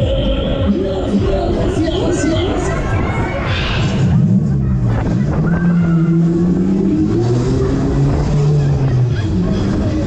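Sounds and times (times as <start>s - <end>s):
loud ride music: 0.0s - 10.0s.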